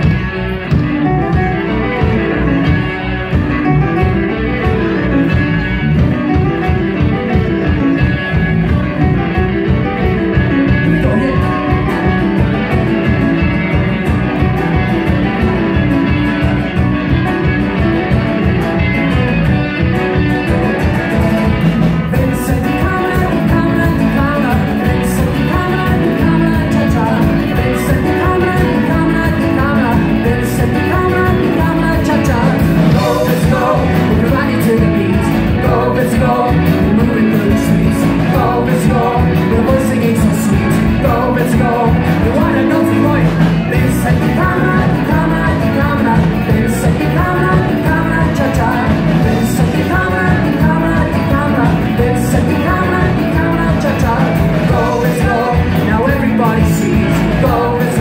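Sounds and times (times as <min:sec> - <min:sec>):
live band playing pop song: 0:00.0 - 0:58.0
person singing: 0:08.7 - 0:17.2, 0:21.8 - 0:58.0.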